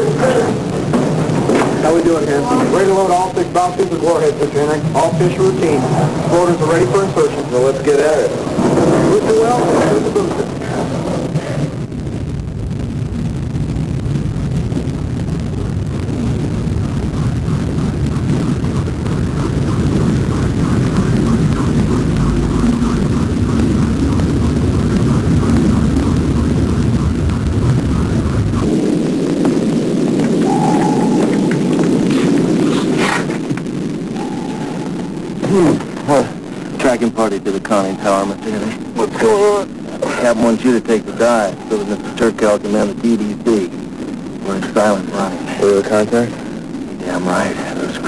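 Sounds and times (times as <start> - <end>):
deep underwater rumble: 0.0 - 48.0
propeller beat: 0.0 - 48.0
man's voice: 35.4 - 43.7.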